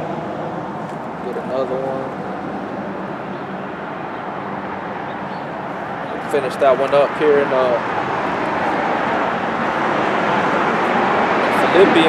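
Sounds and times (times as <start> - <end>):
road traffic rushing past: 0.0 - 12.0.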